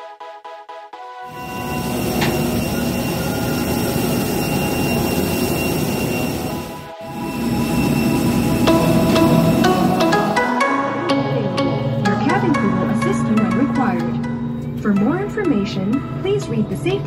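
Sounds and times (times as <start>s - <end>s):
background music: 0.0s - 4.4s, 6.4s - 17.0s
jet engine roar: 1.3s - 10.5s.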